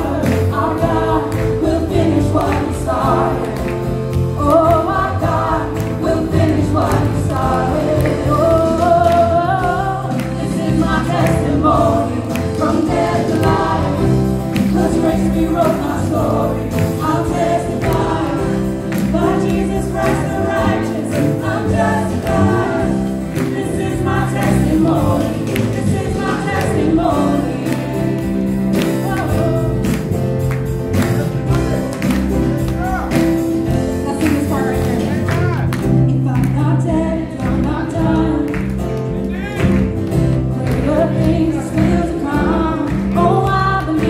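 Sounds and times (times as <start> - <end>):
voices singing together: 0.0 - 30.2, 36.4 - 44.0
woman singing lead: 0.0 - 30.2, 33.7 - 38.9, 40.5 - 44.0
drums keeping a steady beat: 0.0 - 38.3
electric bass guitar: 0.0 - 44.0.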